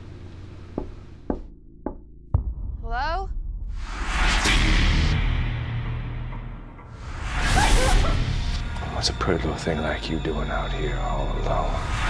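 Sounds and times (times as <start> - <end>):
sharp knocks: 0.7 - 2.5
deep rumbling boom: 1.5 - 7.4.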